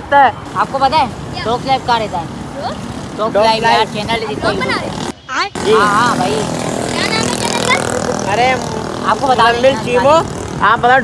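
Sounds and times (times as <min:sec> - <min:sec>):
boys talking and calling out: 0:00.0 - 0:11.0
engine humming: 0:00.5 - 0:10.6.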